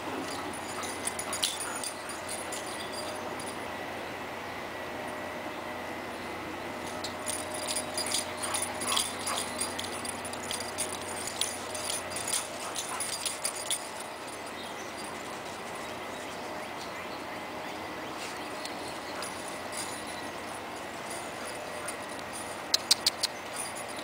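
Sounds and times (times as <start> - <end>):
dogs yipping and whimpering: 0.3 - 3.2, 7.5 - 16.5, 18.2 - 24.0.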